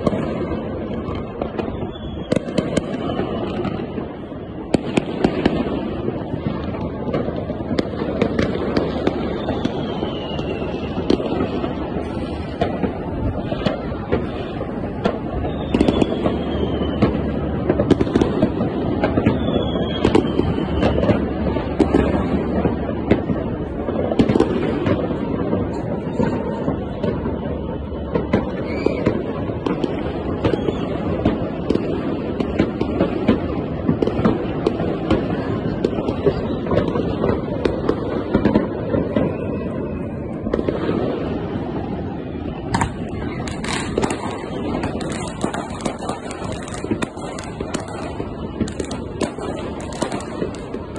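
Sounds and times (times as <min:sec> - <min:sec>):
din of fireworks bursts: 0:00.0 - 0:50.9
sharp firework bangs: 0:00.0 - 0:50.9.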